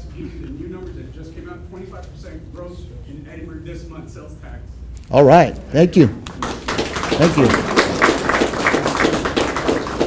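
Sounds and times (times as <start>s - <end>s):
audience applauding: 6.3s - 10.0s.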